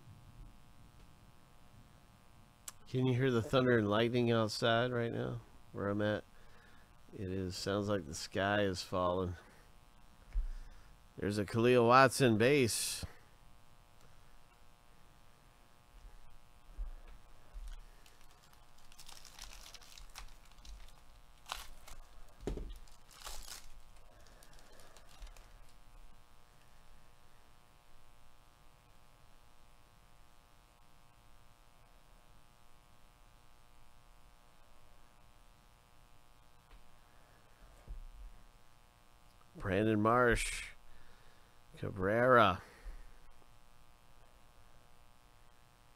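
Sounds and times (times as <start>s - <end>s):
cards shuffling: 17.6s - 25.8s
foil pack tearing and crinkling: 17.6s - 25.8s.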